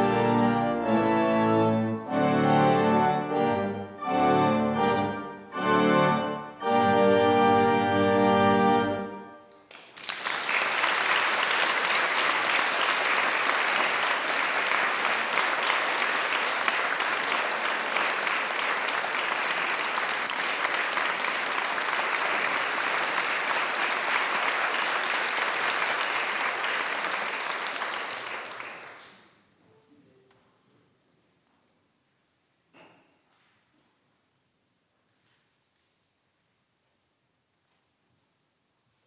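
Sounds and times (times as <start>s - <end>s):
church organ chord: 0.0s - 9.5s
audience applauding: 9.6s - 29.4s.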